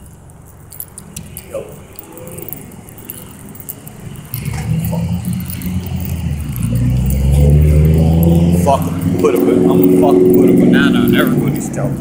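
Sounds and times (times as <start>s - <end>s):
vehicle engine approaching: 0.0s - 12.0s.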